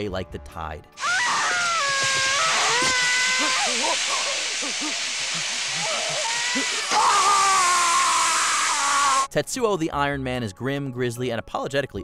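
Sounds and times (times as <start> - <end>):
steady hiss: 1.0 - 9.3.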